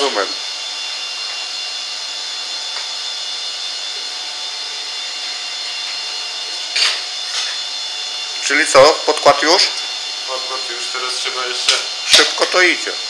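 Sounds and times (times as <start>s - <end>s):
flame-spray gun hissing: 0.0s - 13.0s.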